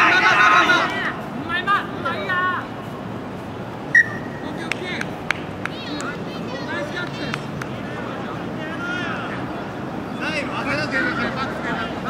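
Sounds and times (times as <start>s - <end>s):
distant shouting of crowd: 0.0s - 2.8s, 7.8s - 12.0s
sharp whistle blast: 3.9s - 4.4s.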